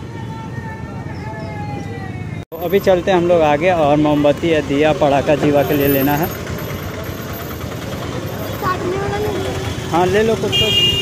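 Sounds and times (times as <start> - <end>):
idling motorcycle engines: 0.0 - 11.0.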